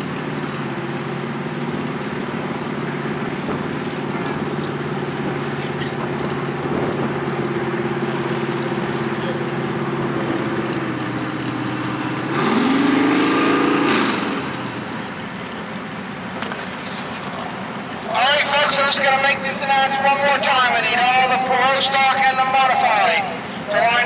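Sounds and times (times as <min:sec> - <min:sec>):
buggy engine revving: 0:00.0 - 0:24.0.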